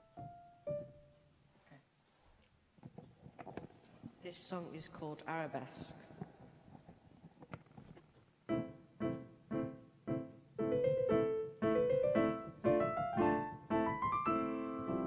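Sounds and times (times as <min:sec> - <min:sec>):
digital piano playing: 0:00.0 - 0:01.3, 0:08.5 - 0:15.0.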